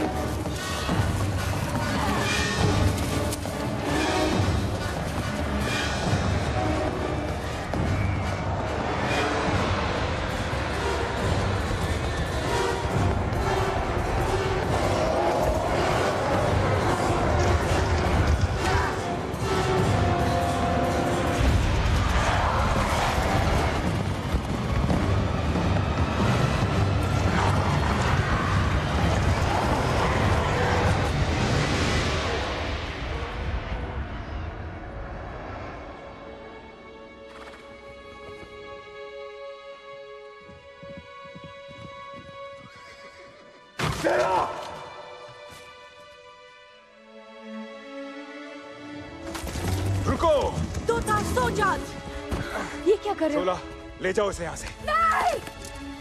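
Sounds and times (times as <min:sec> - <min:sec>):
orchestral film music: 0:00.0 - 0:56.0
hoofbeats of charging herd: 0:19.8 - 0:31.0.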